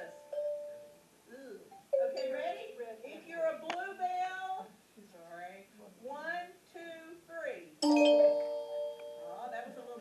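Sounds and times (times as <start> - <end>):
bell ringing: 7.8 - 9.8.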